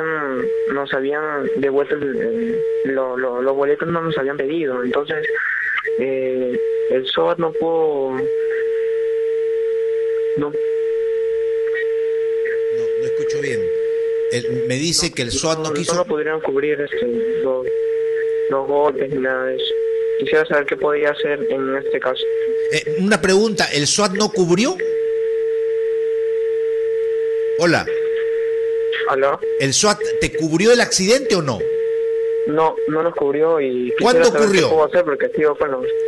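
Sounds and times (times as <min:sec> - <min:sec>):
telephone line tone: 0:05.9 - 0:16.1, 0:21.4 - 0:33.1, 0:33.8 - 0:34.9.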